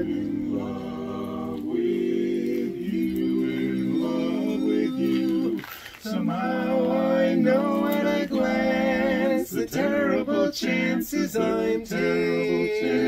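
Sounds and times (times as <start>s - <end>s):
barbershop quartet singing: 0.0s - 13.0s.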